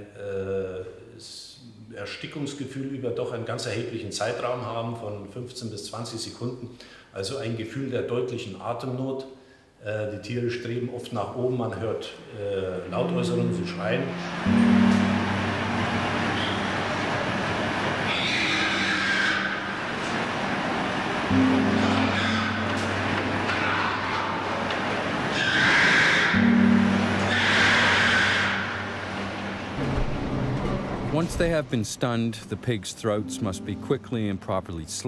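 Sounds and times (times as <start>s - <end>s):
sombre background music: 12.8s - 18.3s, 21.1s - 25.6s, 26.3s - 31.6s, 32.4s - 35.0s
pigs screaming: 18.0s - 20.0s, 21.4s - 29.0s.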